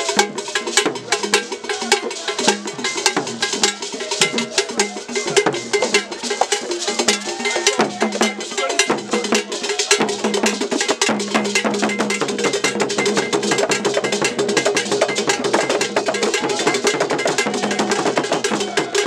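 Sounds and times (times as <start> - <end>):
hand drums: 0.0 - 19.0
struck iron bell pattern: 0.0 - 19.0.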